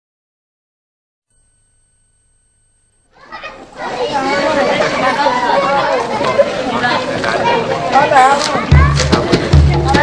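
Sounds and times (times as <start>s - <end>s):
children chattering and calling out: 3.1s - 10.0s.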